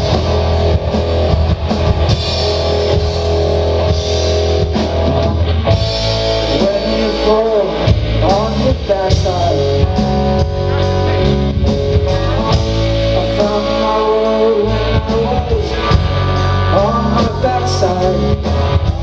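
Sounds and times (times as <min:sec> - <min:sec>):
bass guitar: 0:00.0 - 0:19.0
drum kit beat: 0:00.0 - 0:19.0
electric guitars: 0:00.0 - 0:19.0.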